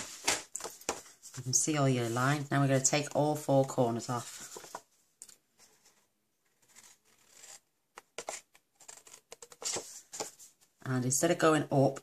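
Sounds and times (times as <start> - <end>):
card stock rustling: 4.1 - 4.9, 6.6 - 10.5.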